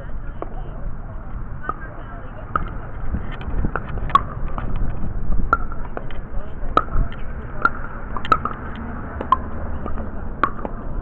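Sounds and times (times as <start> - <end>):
low background rumble: 0.0 - 11.0
paddle striking plastic ball: 7.6 - 8.6, 9.2 - 10.8.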